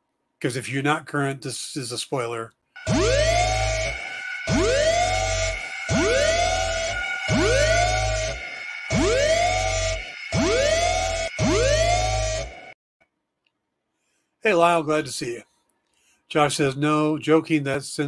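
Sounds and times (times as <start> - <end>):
alarm siren wailing: 2.8 - 12.8.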